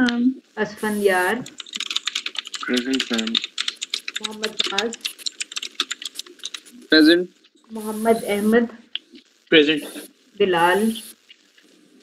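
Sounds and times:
person speaking: 0.0 - 11.3
typing on computer keyboard: 1.4 - 6.7.

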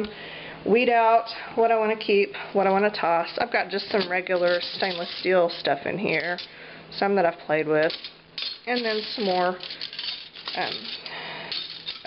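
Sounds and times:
metal cutlery clinking: 3.9 - 5.3, 6.1 - 6.5, 7.8 - 12.0.

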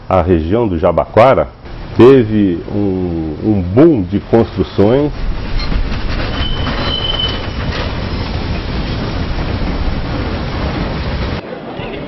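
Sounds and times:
train wheels rumbling on rails: 1.5 - 12.0
high wheel squeal: 5.5 - 8.4.

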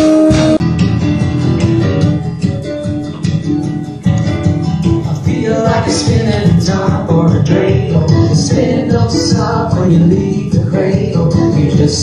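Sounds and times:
bass guitar: 0.0 - 12.0
plucked guitar: 0.0 - 12.0.

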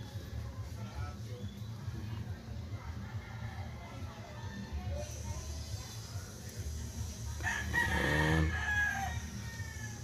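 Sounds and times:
rooster crowing: 7.4 - 10.0.

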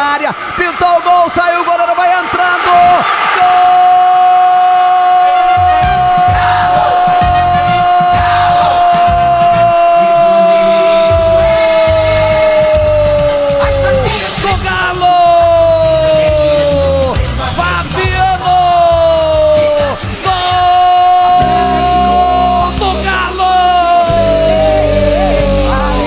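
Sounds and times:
commentator shouting goal: 0.0 - 26.0.

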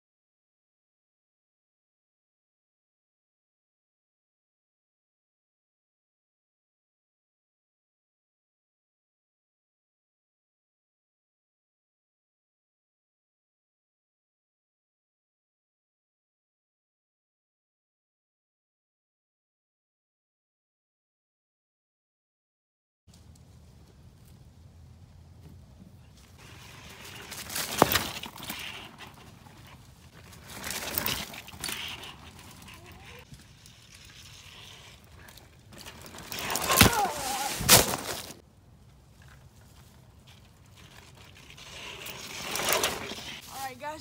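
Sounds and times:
bike tyres rolling over leaves: 26.1 - 44.0.

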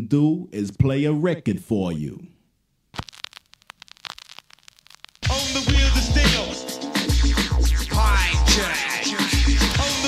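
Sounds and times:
vinyl record crackles and pops: 2.8 - 6.5.

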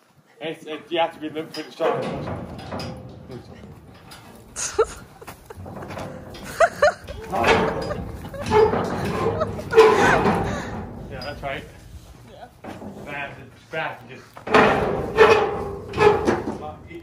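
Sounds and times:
metal gate knocking and rattling: 1.5 - 13.6, 14.4 - 17.0.

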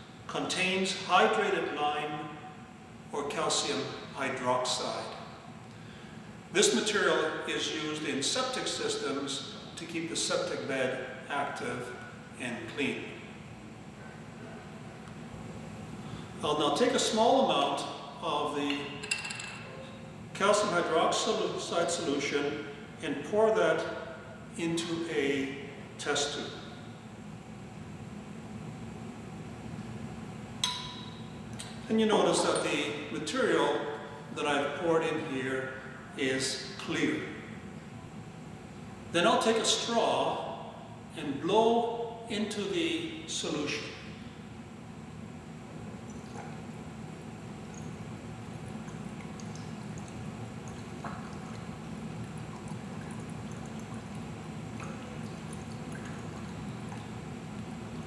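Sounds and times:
glassware clinking: 19.0 - 19.9, 30.6 - 31.2.

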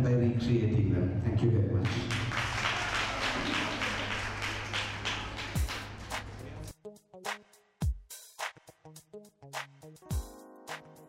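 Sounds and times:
audience clapping: 1.8 - 6.7.

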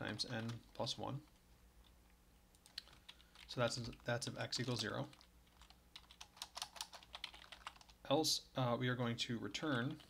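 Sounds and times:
keyboard typing: 2.5 - 8.0.

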